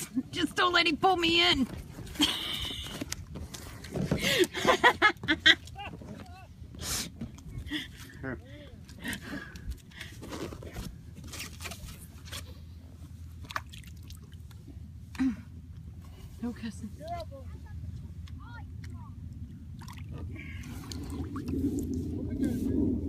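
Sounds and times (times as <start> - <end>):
man laughing: 4.3 - 6.0.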